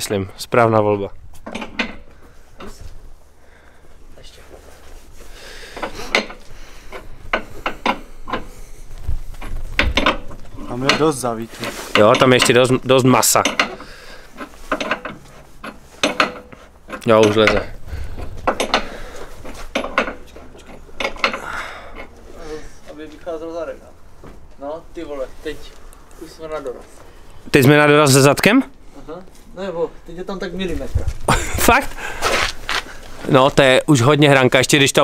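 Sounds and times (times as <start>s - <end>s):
low steady hum: 0.0s - 27.6s
hand tools clicking and knocking: 1.4s - 2.8s, 5.7s - 8.6s, 9.4s - 22.2s.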